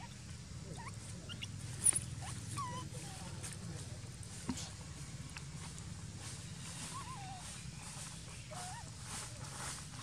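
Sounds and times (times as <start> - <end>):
infant monkey whimpering squeaks: 0.7 - 3.3, 6.9 - 7.6, 8.5 - 8.9.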